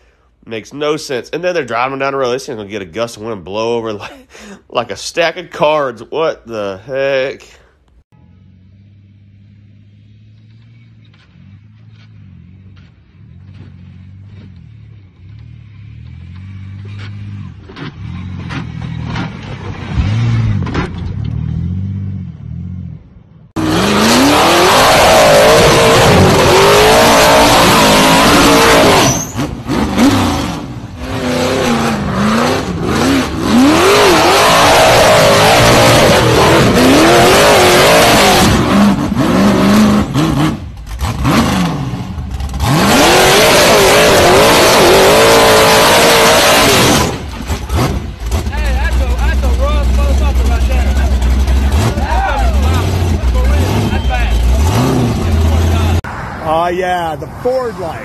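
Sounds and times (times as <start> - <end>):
truck engine accelerating: 8.2 - 58.0
buggy engine revving hard: 11.4 - 22.9, 23.5 - 56.0.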